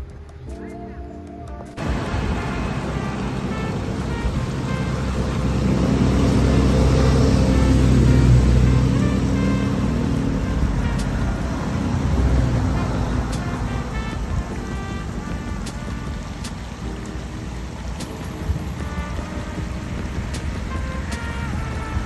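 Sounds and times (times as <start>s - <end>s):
vehicle engine rumbling: 0.0s - 22.0s.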